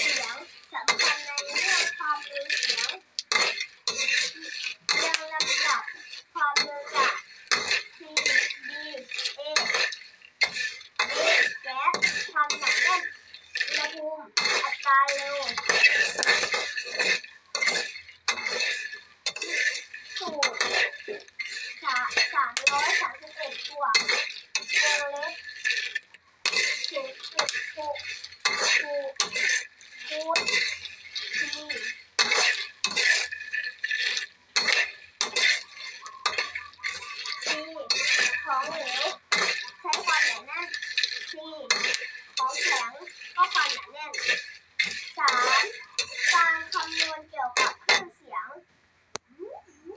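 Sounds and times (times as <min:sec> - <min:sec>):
seeds rattling in pan: 0:00.0 - 0:48.2
metal spatula scraping metal pan: 0:00.0 - 0:48.3.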